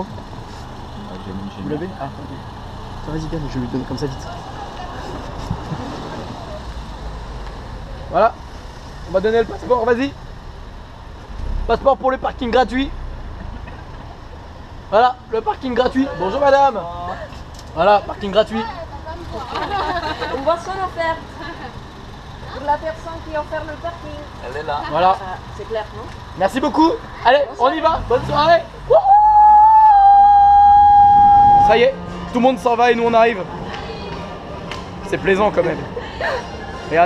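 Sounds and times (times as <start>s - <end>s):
car engine idling: 0.0s - 29.0s.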